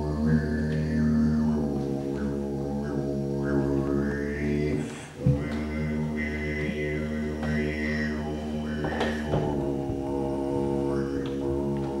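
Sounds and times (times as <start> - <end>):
man's low vocal drone: 0.0 - 12.0.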